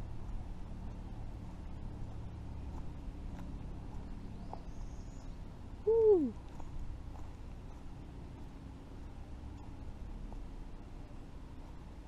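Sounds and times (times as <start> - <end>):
low background rumble: 0.0 - 12.0
hooting animal call: 5.8 - 6.4.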